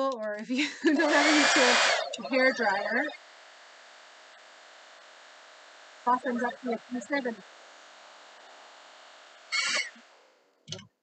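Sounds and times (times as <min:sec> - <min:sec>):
hair dryer blowing: 0:00.8 - 0:03.0.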